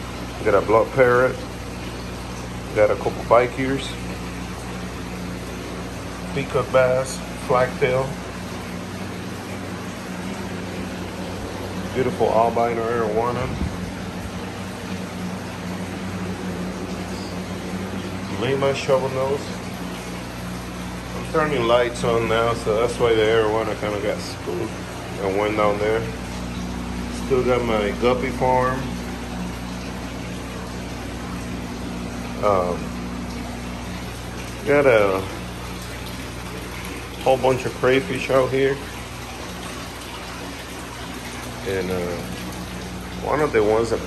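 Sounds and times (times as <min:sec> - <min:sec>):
aquarium pumps hissing: 0:00.0 - 0:44.0
aquarium pumps humming: 0:00.0 - 0:44.0.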